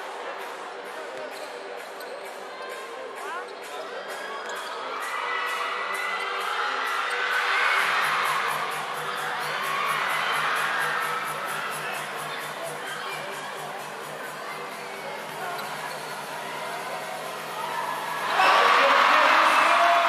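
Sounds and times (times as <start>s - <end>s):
background music with steady beat: 0.0s - 20.0s
crowd shouting and cheering: 0.0s - 20.0s.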